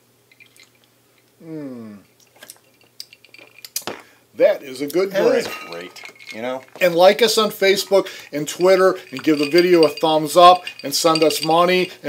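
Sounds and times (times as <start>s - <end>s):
ice cubes clinking in glasses: 0.3s - 0.8s, 2.3s - 4.0s, 5.2s - 12.0s
glass set down: 5.2s - 7.0s.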